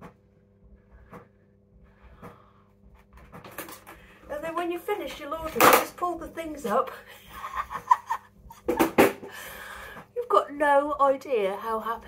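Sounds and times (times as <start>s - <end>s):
plastic laundry basket knocks: 8.7s - 9.3s.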